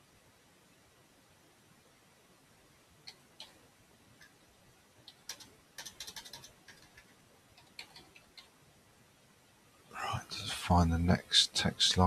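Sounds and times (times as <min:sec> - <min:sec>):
computer keys clicking: 0:03.0 - 0:03.6, 0:05.0 - 0:08.5.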